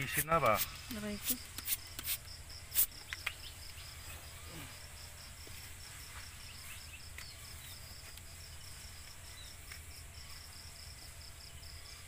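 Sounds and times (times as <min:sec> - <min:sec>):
insect chirping: 0:00.0 - 0:12.0
spray bottle hissing squirts: 0:00.1 - 0:02.9.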